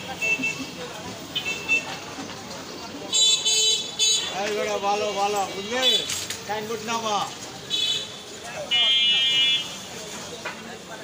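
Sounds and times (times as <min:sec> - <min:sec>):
low street noise: 0:00.0 - 0:11.0.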